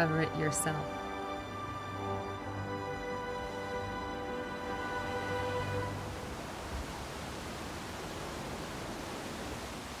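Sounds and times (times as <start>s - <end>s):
music: 0.0s - 6.4s
steady hiss-like noise: 0.0s - 10.0s.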